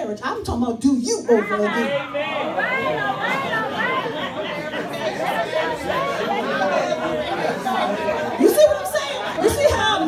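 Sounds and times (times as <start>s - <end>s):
people calling out responses: 0.6s - 10.0s.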